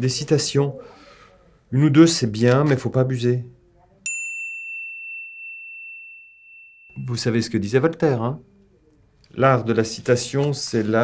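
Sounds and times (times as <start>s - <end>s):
bell ding: 4.0s - 7.5s.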